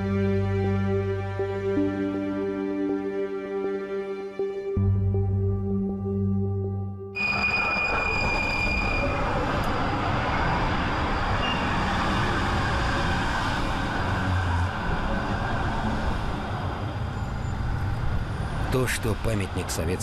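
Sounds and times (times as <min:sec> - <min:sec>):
tram wheels rumbling on rails: 0:07.2 - 0:20.0.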